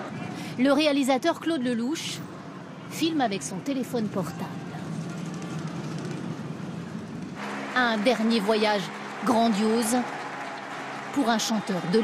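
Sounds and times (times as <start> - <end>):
city street rumble: 0.0 - 12.0.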